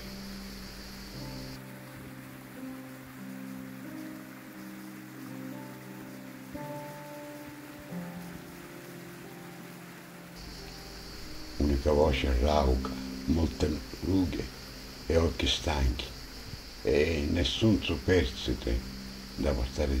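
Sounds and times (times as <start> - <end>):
slow instrumental music: 0.0 - 20.0.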